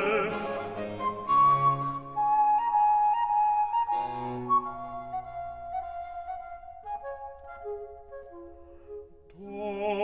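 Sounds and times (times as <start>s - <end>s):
flute playing long notes: 0.3s - 9.1s.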